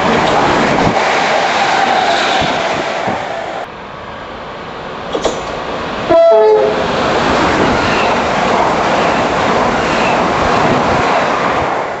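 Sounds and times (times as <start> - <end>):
train wheels rushing on rail: 0.0 - 12.0
train horn high-low tone: 6.1 - 6.8.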